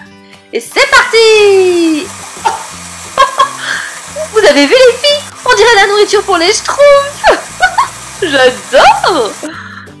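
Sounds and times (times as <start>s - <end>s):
background music: 0.0s - 10.0s
toy blender whirring: 0.9s - 9.6s.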